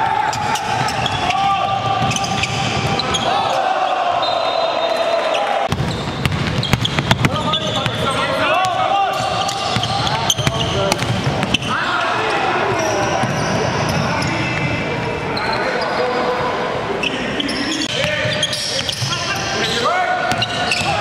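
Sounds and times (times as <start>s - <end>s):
players shouting: 0.0s - 5.8s, 7.2s - 14.2s
sneakers squeaking: 0.2s - 16.4s, 17.0s - 21.0s
basketball bouncing on wood floor: 5.7s - 7.8s, 9.7s - 11.6s.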